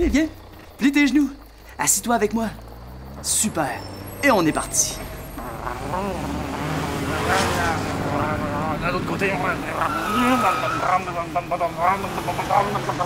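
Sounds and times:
bus engine rumble: 0.0s - 13.0s.

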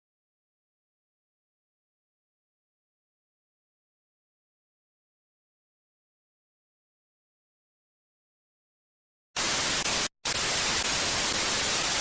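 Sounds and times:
television static hiss: 9.4s - 12.0s.

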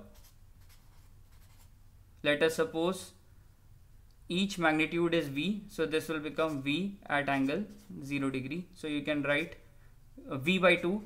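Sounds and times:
marker scratching on paper: 0.0s - 1.7s, 6.2s - 8.1s.

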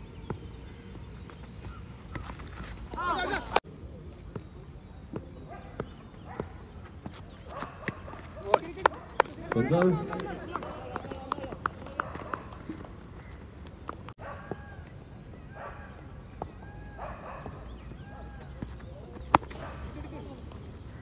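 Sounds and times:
faint distant voices: 2.9s - 21.0s
cricket bat striking ball: 18.6s - 20.9s.

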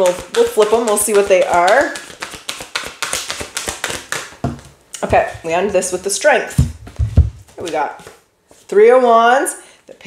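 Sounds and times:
cards tapping and flicking: 0.0s - 4.8s
dull knock on table: 6.6s - 7.4s.

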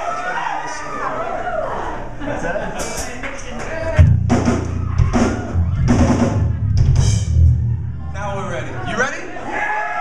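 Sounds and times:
rock drum kit: 3.8s - 8.1s
heavy low rumble: 3.8s - 9.1s.

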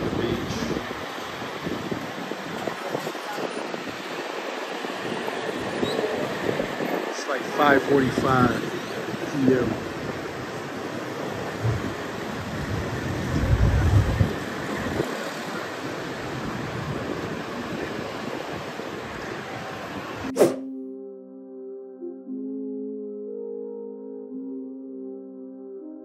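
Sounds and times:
busy street noise: 0.0s - 20.6s
sea: 0.1s - 20.3s
soft ambient music: 20.3s - 26.0s.

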